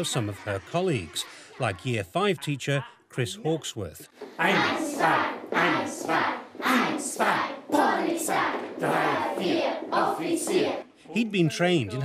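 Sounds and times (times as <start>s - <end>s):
children chanting in rhythm: 4.2s - 11.0s.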